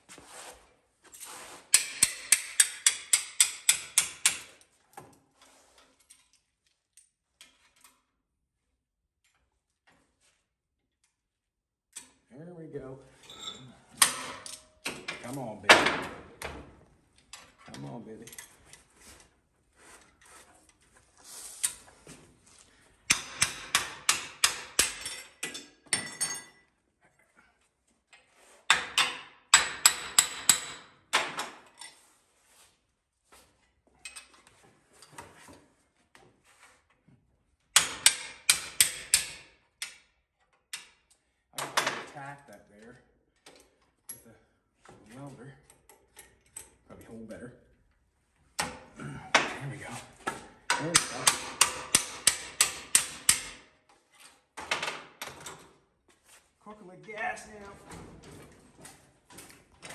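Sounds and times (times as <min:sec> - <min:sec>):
hammer striking metal: 0:50.7 - 0:53.6.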